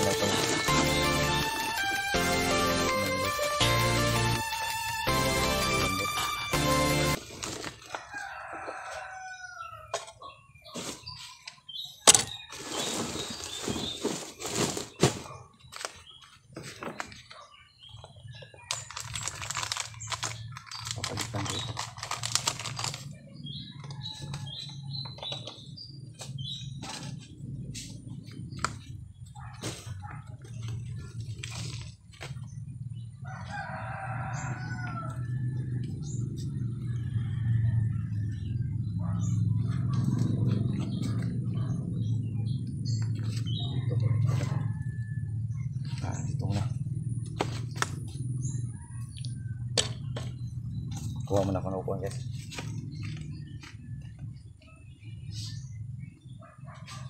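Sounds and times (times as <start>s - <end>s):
rustling soil in a sack: 7.2s - 8.2s, 10.6s - 11.4s, 12.3s - 16.3s
rooster crowing: 7.8s - 10.1s, 33.2s - 38.6s, 43.6s - 45.5s.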